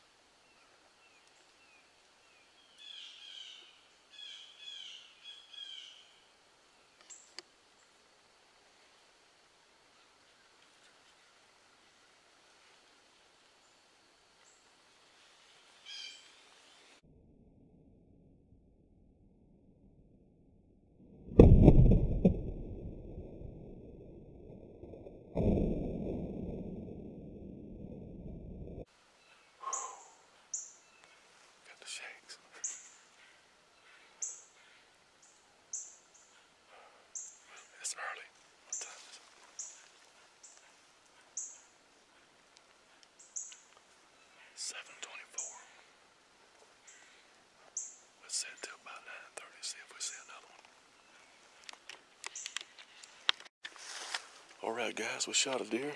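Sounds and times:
faint birds chirping: 0:00.4 - 0:08.1, 0:29.0 - 0:53.3
rumble: 0:17.0 - 0:28.9
man whispering: 0:31.6 - 0:32.8, 0:36.8 - 0:39.4, 0:44.3 - 0:45.9, 0:48.2 - 0:50.7.

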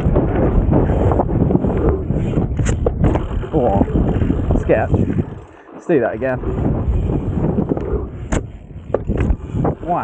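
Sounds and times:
bike tyres rumbling on dirt: 0:00.0 - 0:10.0
wind buffeting microphone: 0:00.0 - 0:10.0.

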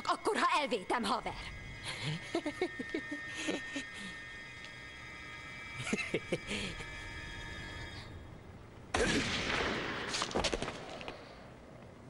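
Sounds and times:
steady electronic tone: 0:00.5 - 0:08.9
gunshot: 0:08.9 - 0:11.0
sharp cracks: 0:08.9 - 0:11.4.

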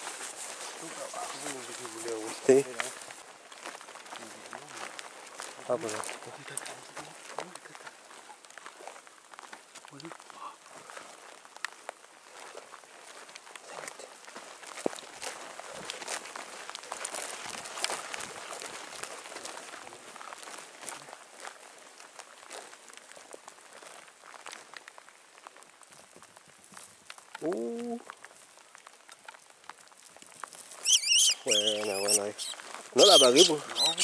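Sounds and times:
footsteps through dry grass: 0:00.0 - 0:34.0.

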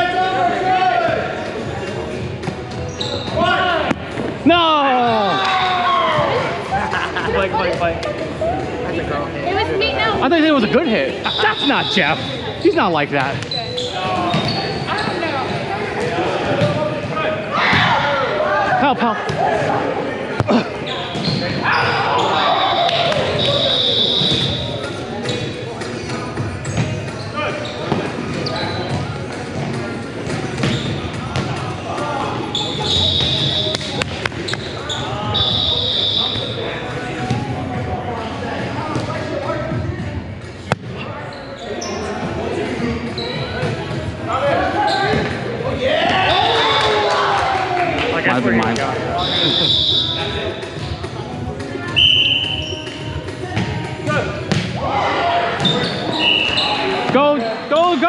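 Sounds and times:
voices calling out: 0:08.4 - 0:26.0, 0:40.9 - 0:58.0.

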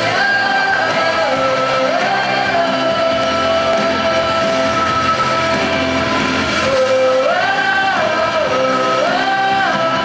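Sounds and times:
backing music: 0:00.0 - 0:10.0
girls singing into microphone: 0:00.0 - 0:10.0.

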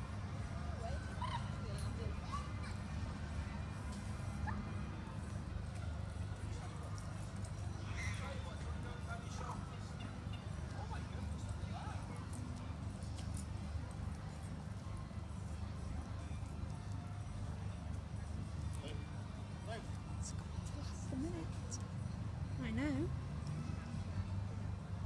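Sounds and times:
faint distant voices: 0:00.0 - 0:25.0.

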